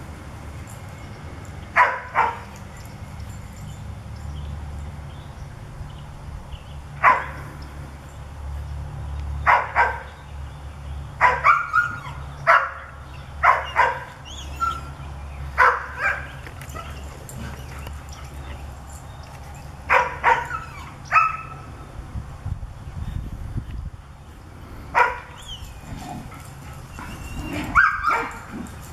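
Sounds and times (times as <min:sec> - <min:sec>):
dogs barking: 0:01.7 - 0:02.6, 0:07.0 - 0:07.5, 0:09.4 - 0:10.2, 0:11.2 - 0:18.8, 0:19.9 - 0:21.7, 0:24.9 - 0:28.9.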